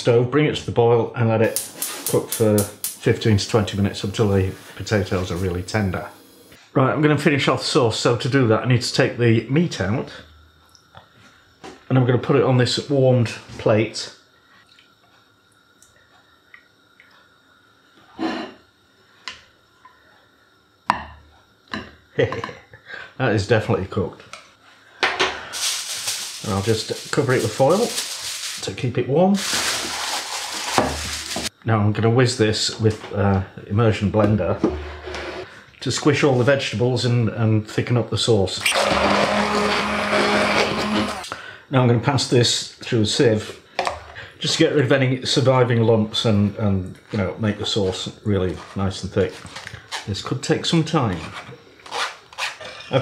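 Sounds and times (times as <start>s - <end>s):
faint utensil ticks: 14.6s - 17.3s
immersion blender motor hum: 38.7s - 41.3s.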